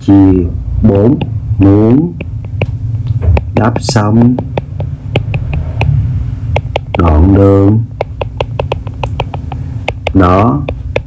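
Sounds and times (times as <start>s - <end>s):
steady low hum: 0.0s - 11.0s
stylus tapping on glass screen: 2.1s - 11.0s.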